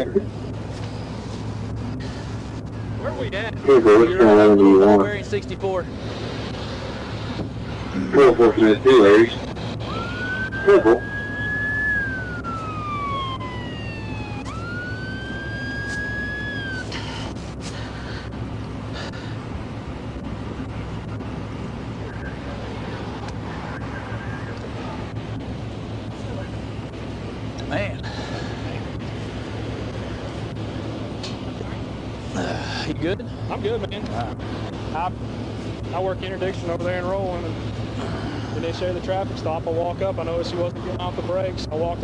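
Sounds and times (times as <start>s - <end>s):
steady low hum: 0.0s - 42.0s
police siren sweeping: 5.9s - 17.9s, 20.3s - 27.4s.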